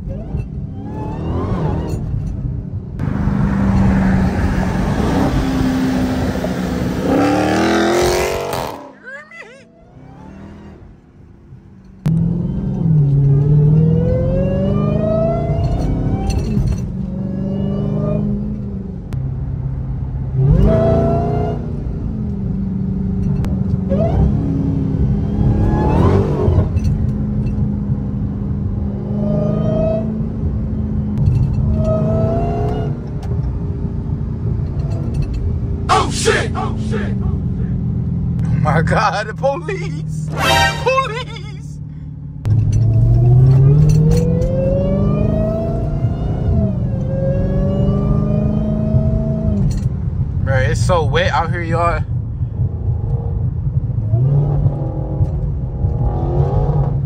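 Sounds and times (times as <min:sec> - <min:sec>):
supercharged engine revving in cabin: 0:00.0 - 0:02.4, 0:03.0 - 0:19.2, 0:20.2 - 0:41.6, 0:42.4 - 0:57.0.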